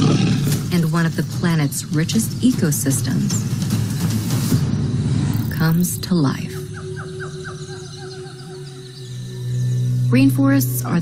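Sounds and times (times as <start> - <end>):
bird chirping: 1.4 - 11.0.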